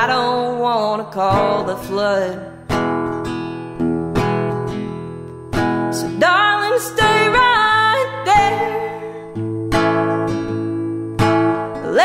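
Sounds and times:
woman singing: 0.0 - 2.8, 5.8 - 9.5, 11.6 - 12.0
acoustic guitar strumming: 0.0 - 12.0.

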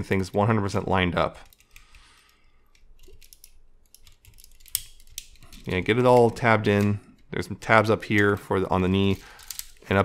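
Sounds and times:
plastic toy parts clicking: 2.6 - 6.9, 9.0 - 9.8.

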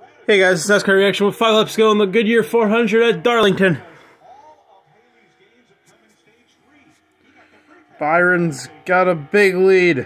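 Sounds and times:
faint television commentary: 0.0 - 10.0.

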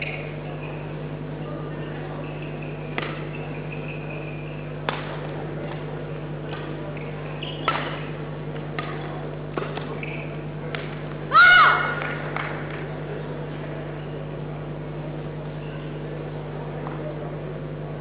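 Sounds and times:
racket striking shuttlecock: 2.9 - 3.5, 4.8 - 11.1
shoe squeaks on court floor: 7.0 - 8.1, 9.9 - 10.4.

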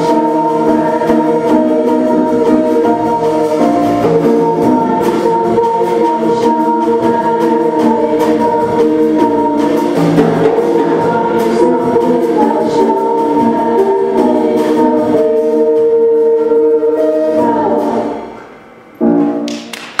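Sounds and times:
choir singing: 0.0 - 18.5.

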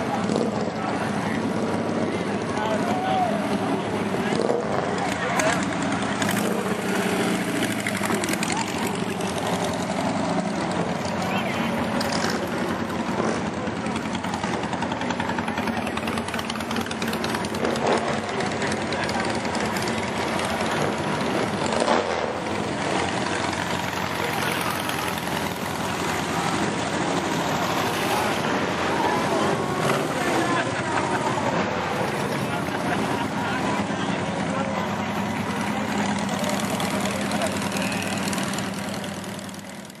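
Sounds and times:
people talking: 0.0 - 39.8
buggy and go-kart engines: 0.0 - 40.0.

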